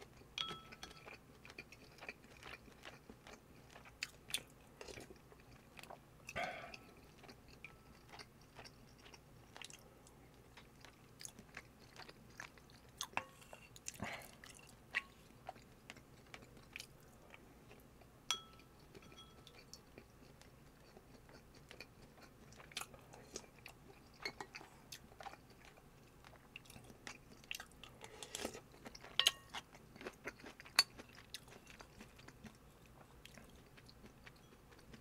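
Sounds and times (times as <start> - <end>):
close-miked chewing: 0.0 - 35.0
spoon clicking on ceramic bowl: 0.4 - 1.0, 18.3 - 19.5, 29.2 - 29.5.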